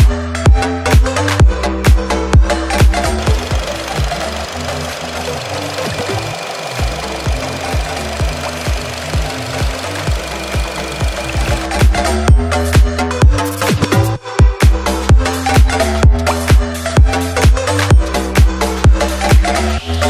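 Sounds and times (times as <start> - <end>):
car engine idling: 2.5 - 12.8.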